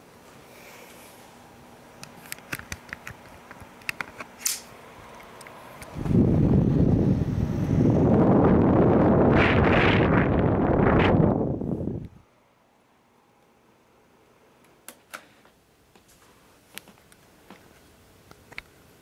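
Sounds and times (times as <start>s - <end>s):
fan air rushing on microphone: 4.5s - 12.2s.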